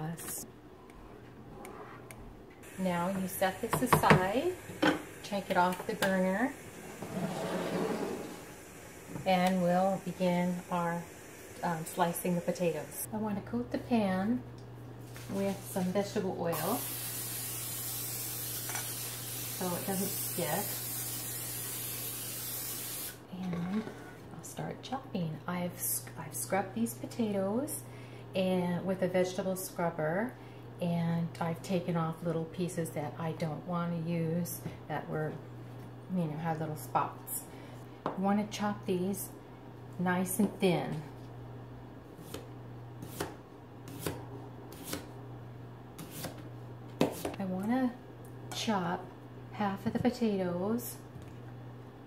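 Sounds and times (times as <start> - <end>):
aerosol spray hissing: 8.2 - 13.1, 16.6 - 23.2
knife slicing raw potato: 42.2 - 45.1, 46.0 - 46.4, 47.0 - 47.4.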